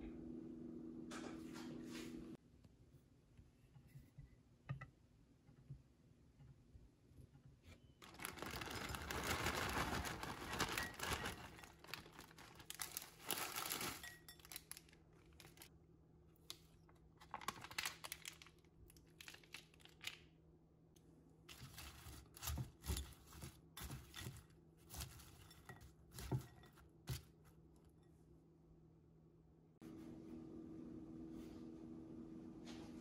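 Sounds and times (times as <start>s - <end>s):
packaging crinkling and tearing: 8.0s - 15.7s, 17.2s - 20.2s.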